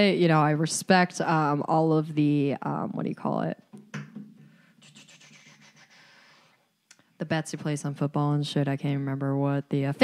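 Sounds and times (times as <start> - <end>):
faint scratchy noise: 4.0 - 9.6
person speaking: 4.8 - 6.2.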